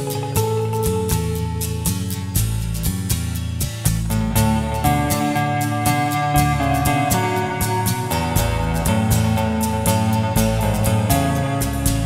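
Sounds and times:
electric guitar lead melody: 0.0s - 2.8s, 4.0s - 12.0s
bass: 0.0s - 12.0s
steady drum beat: 2.4s - 12.0s.

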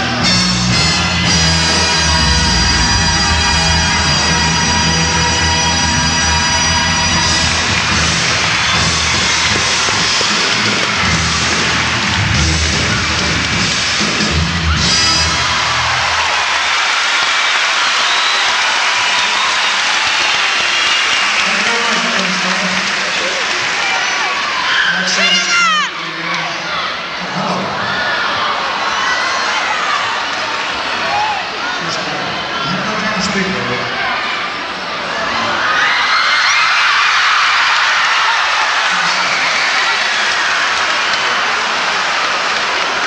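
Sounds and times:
live band playing: 0.0s - 16.4s
crowd cheering and applauding: 0.0s - 43.0s.

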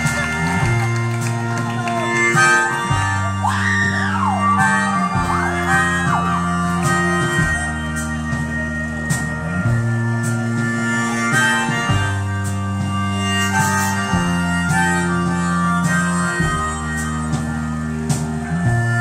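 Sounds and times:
harmonica solo: 0.0s - 19.0s
live rock band playing: 0.0s - 19.0s.

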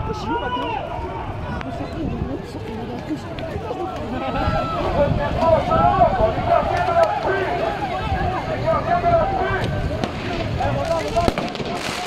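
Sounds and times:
street crowd calling out: 0.0s - 12.0s.

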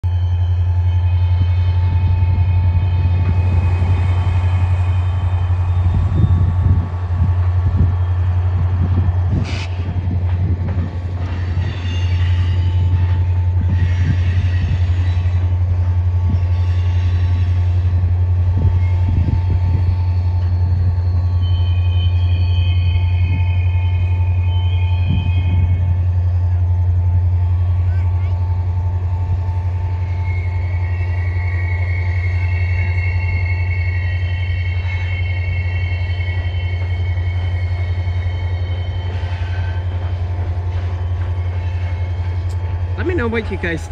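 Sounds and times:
diesel locomotive drone: 0.0s - 43.9s
wheel squeals: 11.2s - 15.5s.

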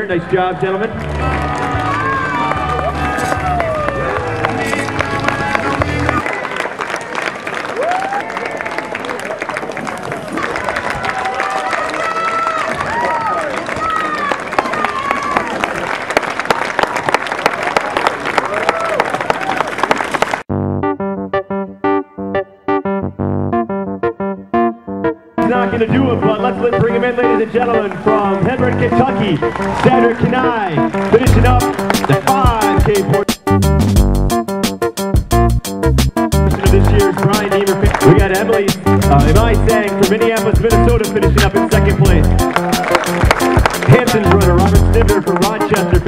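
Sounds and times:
background music: 0.0s - 6.2s, 20.5s - 46.0s
crowd cheering and clapping: 0.2s - 20.5s, 27.8s - 33.1s, 36.3s - 39.7s, 41.7s - 46.0s
electric piano music: 20.5s - 46.0s.

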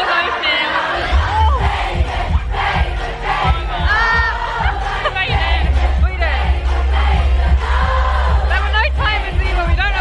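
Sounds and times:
crowd shouting and singing along: 0.0s - 10.0s
pop music with bass beat: 1.0s - 10.0s.

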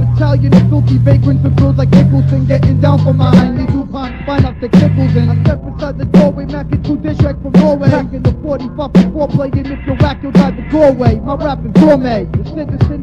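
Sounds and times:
rapping over a hip hop beat: 0.0s - 13.0s.

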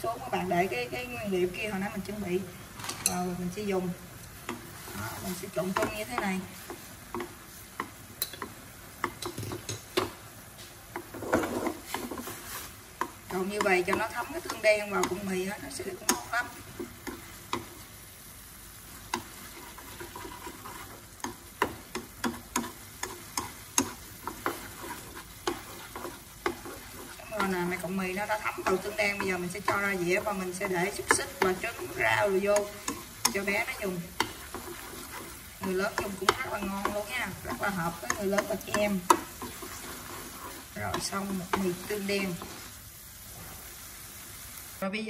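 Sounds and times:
sauce sizzling in a wok: 0.0s - 45.0s
chopsticks knocking in a metal wok: 19.1s - 42.6s.

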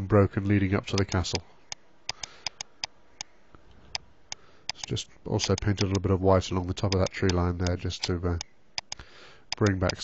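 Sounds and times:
mouse and keyboard clicks: 1.0s - 3.3s, 3.9s - 6.0s, 6.9s - 10.0s.

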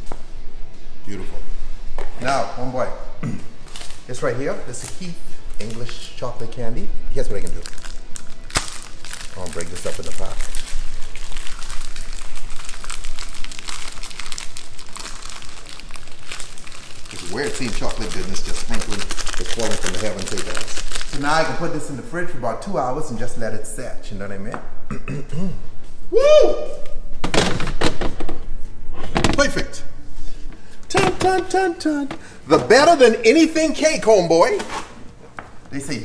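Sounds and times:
candy wrapper crinkling: 4.7s - 6.2s, 7.3s - 21.6s.

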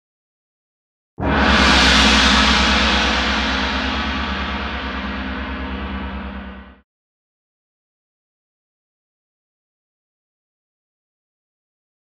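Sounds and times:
gong-like hit ringing: 1.2s - 6.8s.

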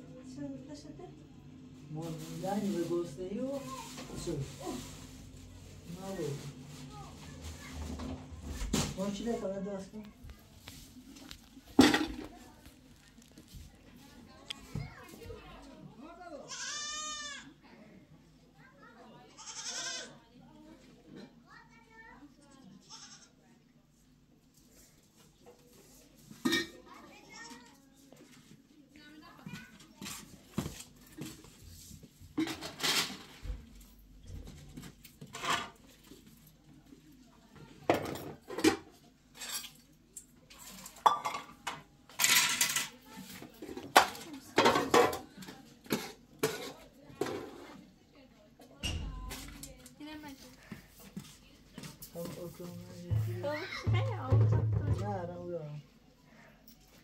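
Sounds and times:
metal pots and pans clattering: 11.7s - 12.4s, 26.4s - 26.8s, 32.4s - 33.4s, 35.2s - 35.8s, 37.9s - 39.8s, 40.6s - 43.0s, 43.7s - 47.7s.

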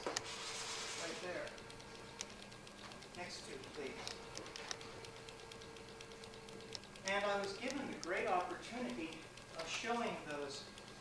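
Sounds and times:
faint steady hum: 0.0s - 11.0s
tape hiss: 0.0s - 11.0s
soft clicks: 1.2s - 11.0s.

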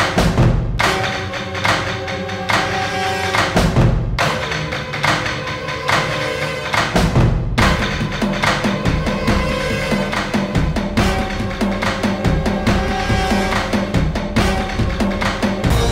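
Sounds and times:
dramatic music with percussion beat: 0.0s - 15.9s.

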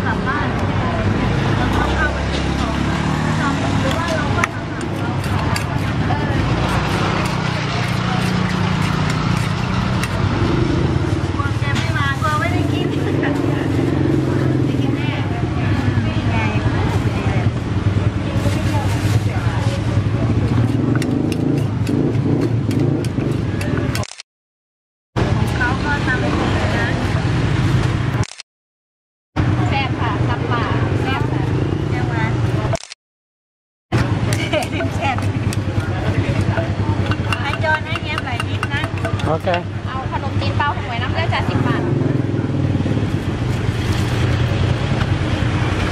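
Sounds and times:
traffic engine rumble: 0.0s - 24.2s, 25.2s - 28.3s, 33.9s - 45.9s
pestle knocking in mortar: 20.6s - 24.0s, 34.3s - 39.8s
voices talking: 34.0s - 42.8s.

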